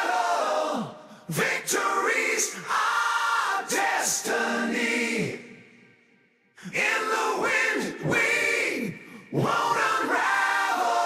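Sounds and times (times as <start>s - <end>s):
choir-like singing: 0.0s - 5.9s, 6.6s - 11.0s.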